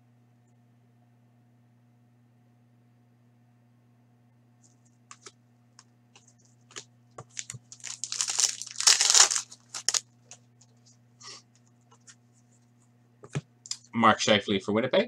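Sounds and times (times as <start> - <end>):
cards being handled: 4.7 - 5.3, 6.2 - 10.8
foil wrapper tearing and crinkling: 6.7 - 10.0.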